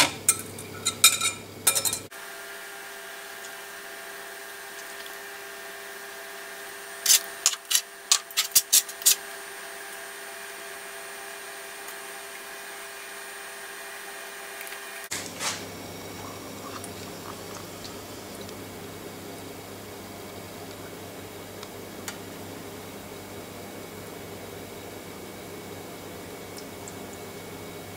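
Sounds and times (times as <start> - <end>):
faint steady hum: 14.6 - 27.9.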